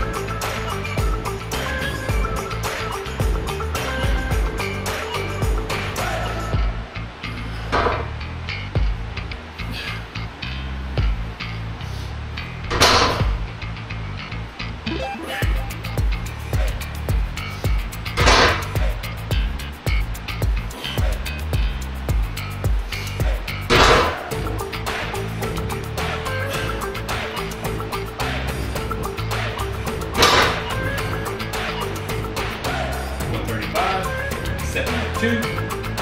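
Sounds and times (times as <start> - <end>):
background music with steady beat: 0.0 - 11.8, 12.4 - 14.1, 15.2 - 36.0.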